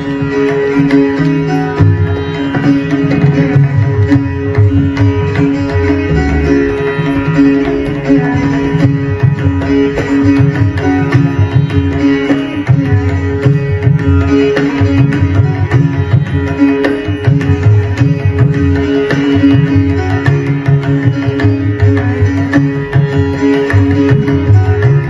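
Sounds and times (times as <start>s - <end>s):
plucked sitar melody: 0.0s - 25.0s
tabla strokes: 0.0s - 25.0s.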